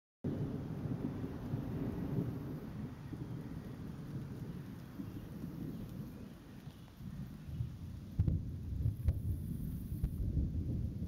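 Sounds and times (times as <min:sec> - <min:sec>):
thunder rolling: 0:00.2 - 0:11.0.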